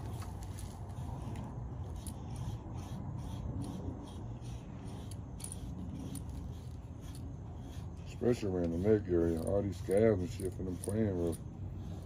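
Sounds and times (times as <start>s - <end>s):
brush scratching through dog fur: 0.0s - 12.0s
collar tag jingling: 3.6s - 12.0s.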